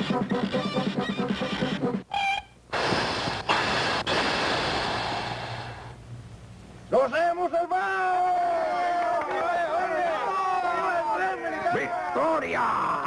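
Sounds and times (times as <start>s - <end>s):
rhythmic cartoon music: 0.0s - 2.9s
train brakes hissing: 2.7s - 6.0s.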